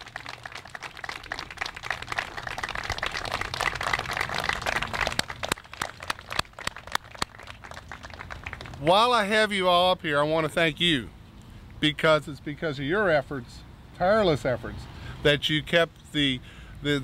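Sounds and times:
crowd applauding: 0:00.0 - 0:09.1.

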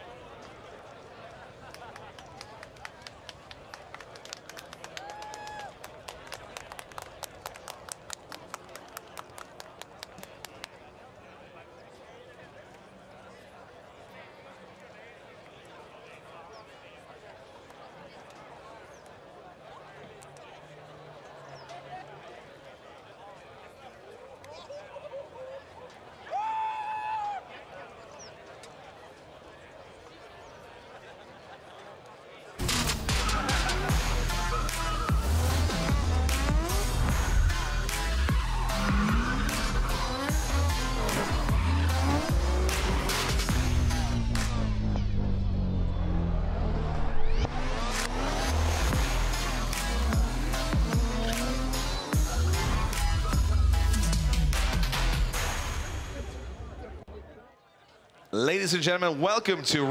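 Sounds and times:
distant indistinct voices: 0:00.0 - 0:26.4
distant crowd murmur: 0:00.0 - 0:59.9
hand clapping: 0:01.7 - 0:10.8.

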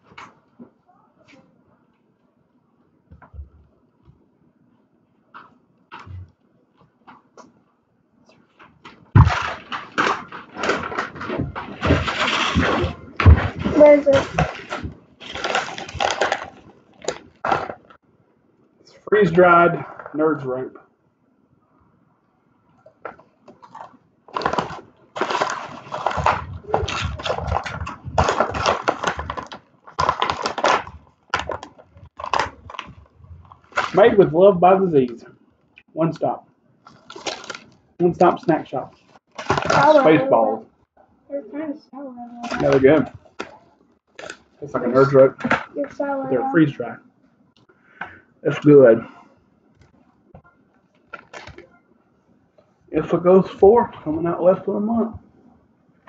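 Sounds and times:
crackling rustle: 0:08.3 - 0:18.0, 0:22.8 - 0:34.3, 0:36.8 - 0:40.0
plastic pouch crinkling: 0:09.2 - 0:17.9, 0:23.6 - 0:34.1, 0:36.9 - 0:37.9, 0:42.5 - 0:44.6, 0:51.0 - 0:51.6.

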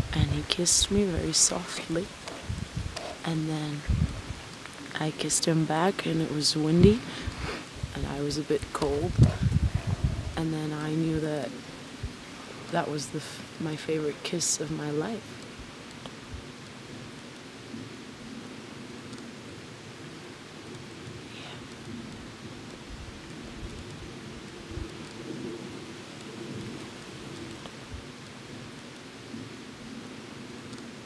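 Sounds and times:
outdoor hiss among trees: 0:00.0 - 0:31.0
wind rumble on microphone: 0:00.0 - 0:31.0.

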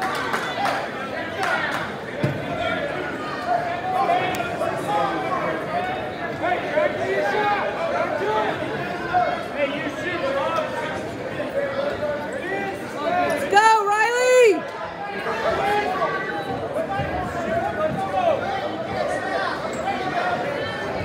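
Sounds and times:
voices talking and calling out: 0:00.3 - 0:21.0.

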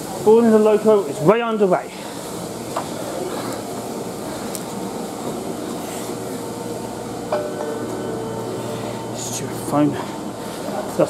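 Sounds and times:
faint steady whine: 0:00.0 - 0:11.0
trains standing at platform: 0:00.0 - 0:11.0.

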